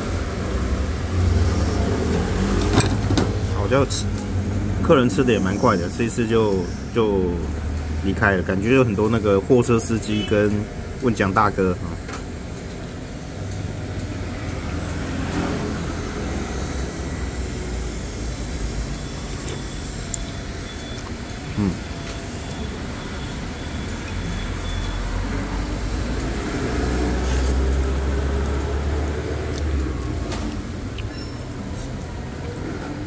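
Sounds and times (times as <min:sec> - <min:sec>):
road traffic engine rumble: 0:00.0 - 0:33.0
vehicle passing: 0:25.1 - 0:31.0.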